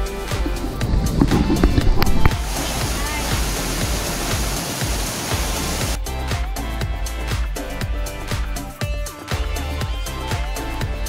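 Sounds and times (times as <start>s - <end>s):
background music with beat: 0.0s - 11.0s
waterfall rushing water: 0.2s - 6.0s.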